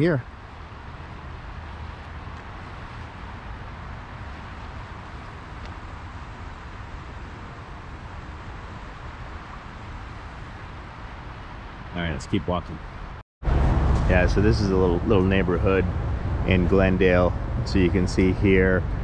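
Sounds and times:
freeway traffic: 0.0s - 19.0s
low uneven rumble: 0.0s - 19.0s.

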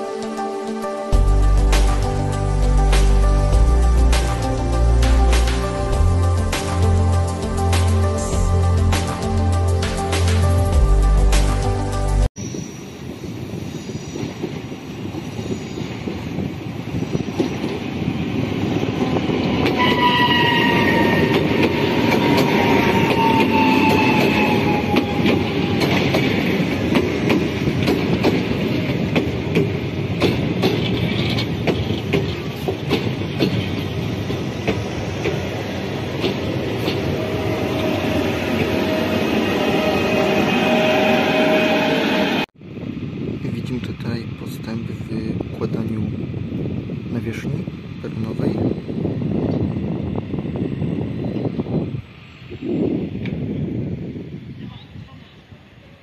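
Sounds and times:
high squeal from running gear: 12.4s - 14.4s
train wheels rattling on track: 12.4s - 42.4s.

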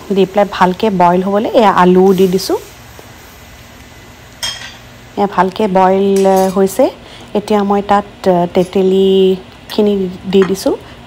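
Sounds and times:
kitchen utensils clinking: 4.4s - 4.9s, 6.1s - 6.6s.

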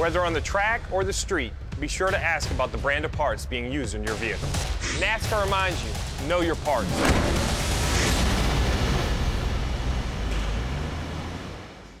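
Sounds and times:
race car engine: 6.8s - 12.0s.

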